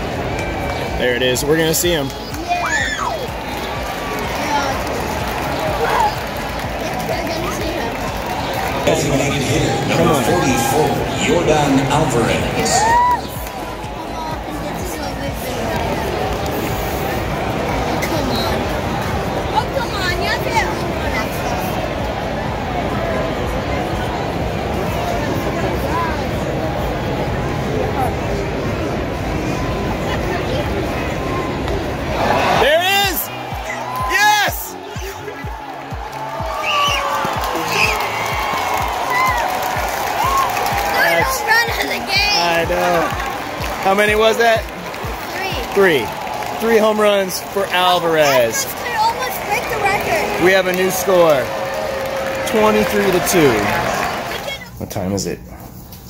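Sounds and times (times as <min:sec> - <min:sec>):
fans whooping: 0:00.0 - 0:14.6, 0:31.2 - 0:54.6
voices talking: 0:00.0 - 0:21.8, 0:30.0 - 0:51.6
crowd murmur: 0:00.0 - 0:54.8
stadium announcer echoing: 0:08.8 - 0:13.2, 0:52.3 - 0:54.5.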